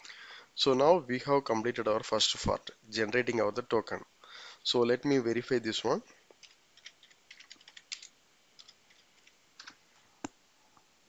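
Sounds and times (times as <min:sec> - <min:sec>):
keyboard typing: 0:06.4 - 0:09.8.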